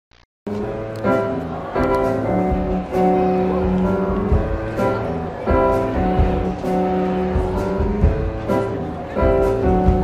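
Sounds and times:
live band playing: 0.5s - 10.0s
low beat: 2.1s - 10.0s.

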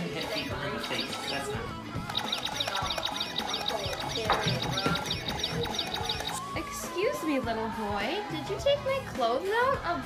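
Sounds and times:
rapid high chirps: 0.0s - 6.5s
background music: 0.0s - 10.0s.

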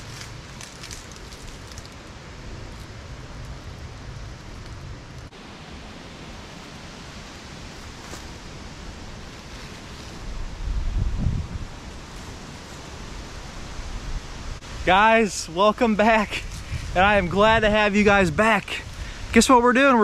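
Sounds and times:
leaves rustling: 0.0s - 20.0s
wind on microphone: 6.0s - 15.0s, 16.1s - 19.4s.

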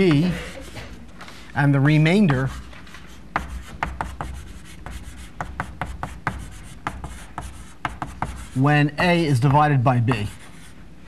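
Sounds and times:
chalk writing on a blackboard: 0.0s - 1.1s, 2.0s - 10.8s.

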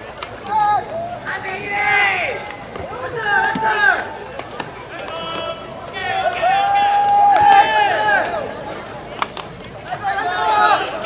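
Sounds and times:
players shouting drawn-out calls: 0.0s - 11.0s.

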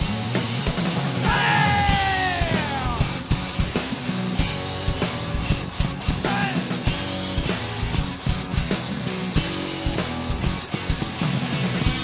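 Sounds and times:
live heavy rock band: 0.0s - 12.0s
yelled vocal note sliding down: 1.2s - 3.2s.

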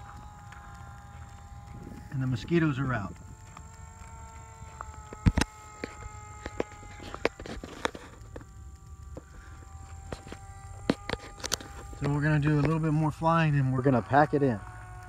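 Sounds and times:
electric motor whining: 0.0s - 15.0s.

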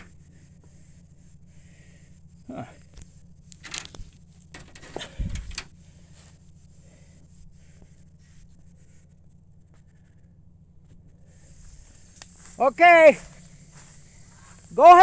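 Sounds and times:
vehicle engine idling hum: 0.0s - 15.0s.

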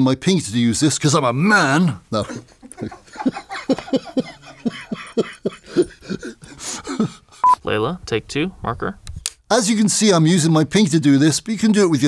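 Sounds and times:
man laughing in breathy bursts: 2.1s - 7.4s.

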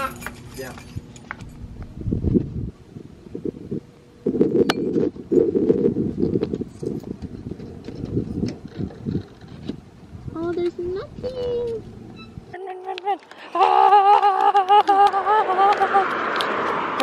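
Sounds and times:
wind buffeting microphone: 0.6s - 12.6s
light clicks and footsteps: 10.4s - 11.9s.

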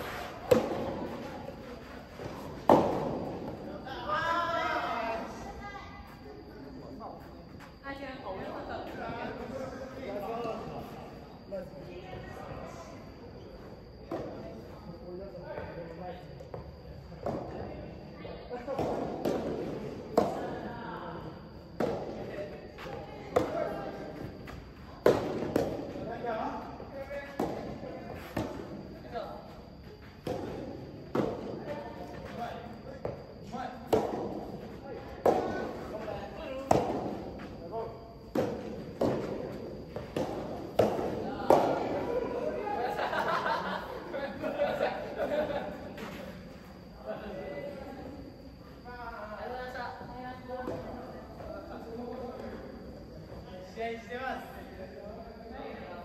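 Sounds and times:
players' voices: 0.0s - 56.0s
racket hitting ball: 40.0s - 42.0s.

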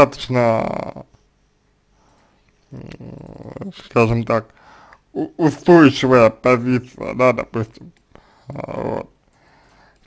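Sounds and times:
man speaking: 0.0s - 1.2s, 2.7s - 4.5s, 5.1s - 9.2s.

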